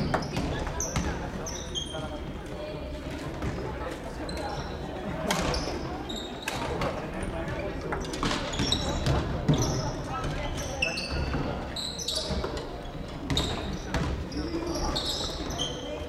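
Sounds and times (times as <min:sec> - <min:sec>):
shoe squeaks on floor: 0:00.0 - 0:02.3, 0:04.2 - 0:16.0
players chattering: 0:00.0 - 0:16.0.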